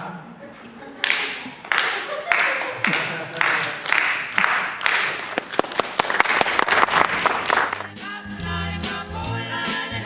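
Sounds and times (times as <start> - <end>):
rhythmic handclapping: 1.0 - 8.1.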